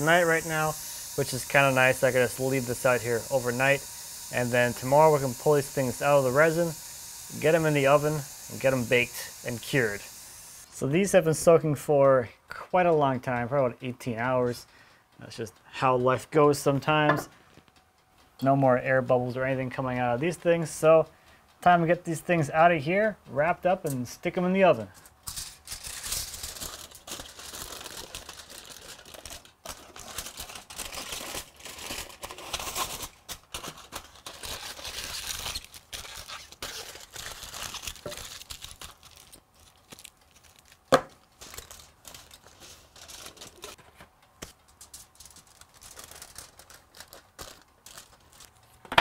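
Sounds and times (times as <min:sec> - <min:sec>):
aluminium foil crinkling: 0:00.0 - 0:03.8, 0:24.9 - 0:48.9.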